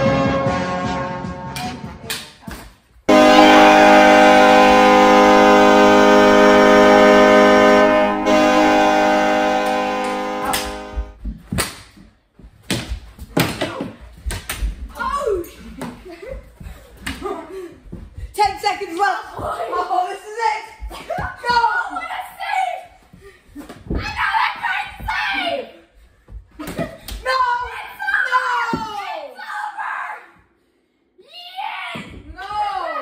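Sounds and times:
hockey goal horn: 0.0s - 1.6s, 3.1s - 11.2s.

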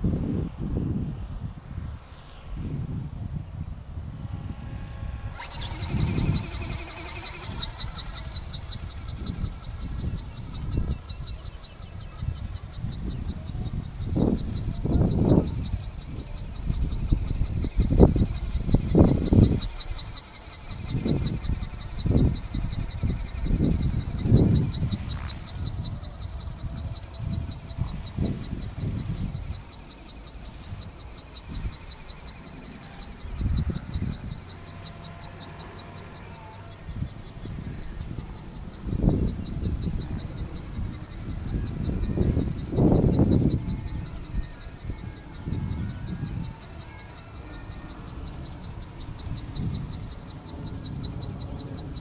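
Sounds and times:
wind buffeting microphone: 0.0s - 52.0s
high insect buzz: 0.5s - 52.0s.

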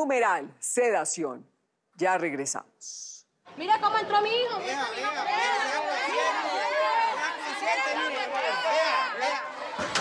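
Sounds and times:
people arguing: 3.6s - 10.0s.

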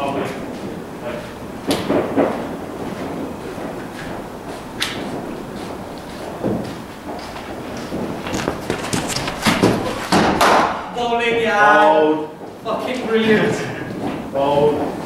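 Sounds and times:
footsteps: 0.0s - 15.0s
cricket balls thudding: 4.9s - 11.0s.

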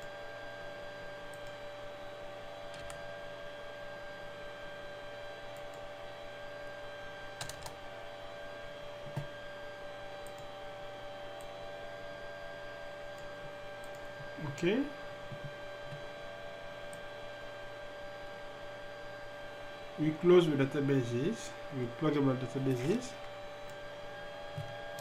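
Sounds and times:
steady electrical hum: 0.0s - 25.0s.

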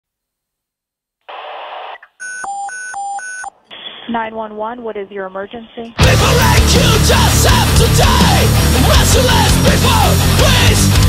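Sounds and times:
phone-line hiss: 1.3s - 2.1s
radio static burst: 1.3s - 2.2s, 3.7s - 4.4s
two-tone electronic alert: 2.2s - 3.5s.

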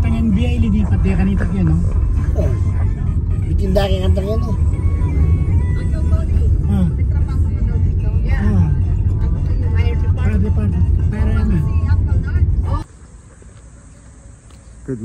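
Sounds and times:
music playing: 0.0s - 12.9s
car road noise rumble: 0.0s - 15.0s.

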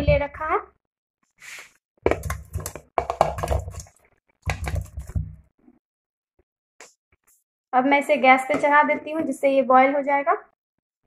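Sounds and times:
vegetable pieces plopping into water: 2.1s - 5.4s.

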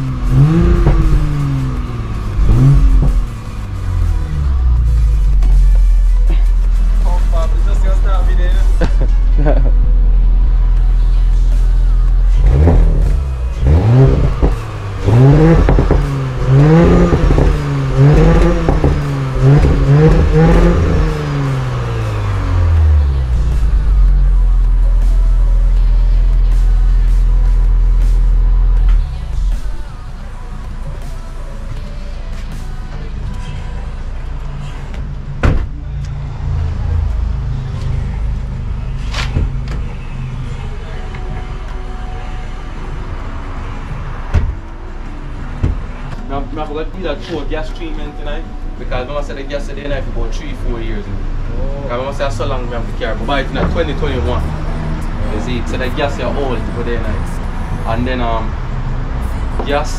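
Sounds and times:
car engine revving and idling: 0.0s - 59.9s.

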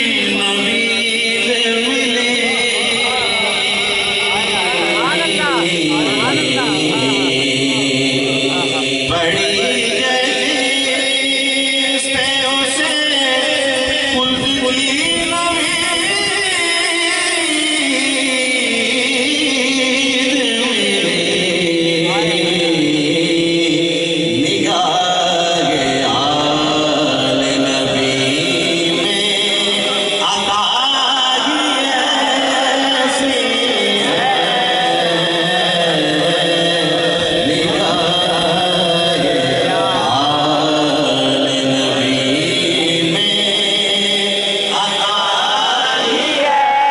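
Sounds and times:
man chanting through loudspeakers: 0.0s - 46.9s.

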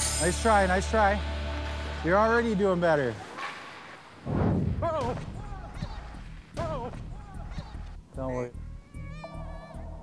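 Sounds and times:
short wavering cries: 8.8s - 10.0s.

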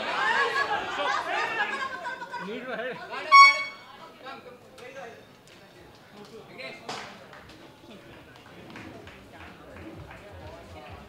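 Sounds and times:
short horn toot: 3.3s - 4.0s.

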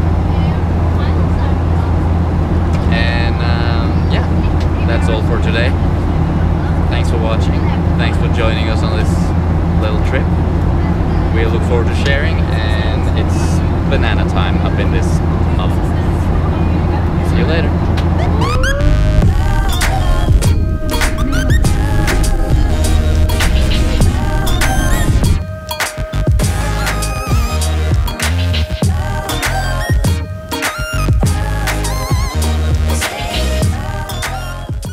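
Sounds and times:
airliner cabin drone: 0.0s - 28.2s
rising gliding tone: 15.2s - 27.9s.

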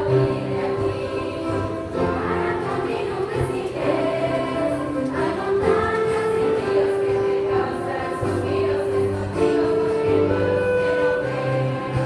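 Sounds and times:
choir singing in harmony: 0.0s - 12.0s
instrumental accompaniment: 0.0s - 12.0s.

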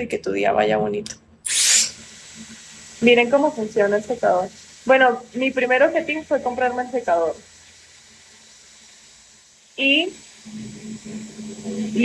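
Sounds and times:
hair dryer blowing air: 1.5s - 12.0s.

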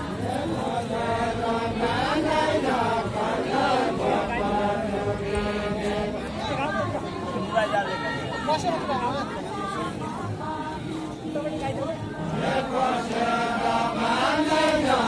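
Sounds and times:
group singing folk song: 0.0s - 6.9s, 9.8s - 15.0s.

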